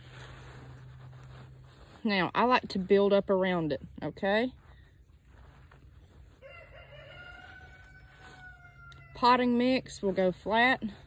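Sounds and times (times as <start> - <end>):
rooster crowing: 6.4 - 9.2.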